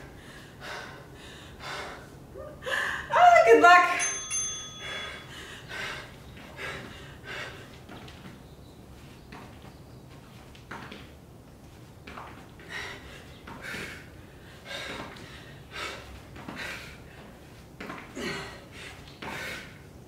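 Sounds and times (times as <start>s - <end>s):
timer bell chime: 3.8s - 5.5s.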